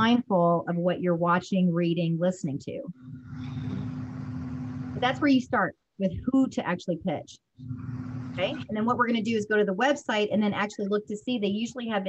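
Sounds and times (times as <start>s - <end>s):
steady hum tone: 2.9s - 9.6s.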